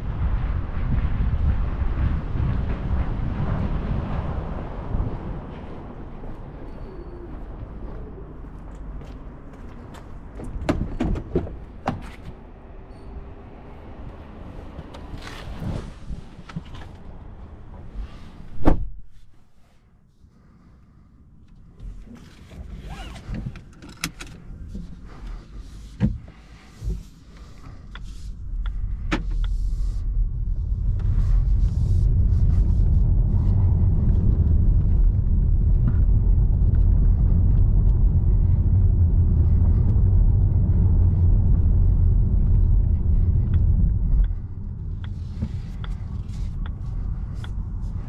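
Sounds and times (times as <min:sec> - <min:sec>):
tyres rumbling on cobblestones: 0:00.0 - 0:18.0, 0:24.4 - 0:48.0
seatbelt webbing sliding: 0:22.0 - 0:27.2
seatbelt buckle click: 0:22.8 - 0:24.4
light ticks: 0:43.4 - 0:47.6.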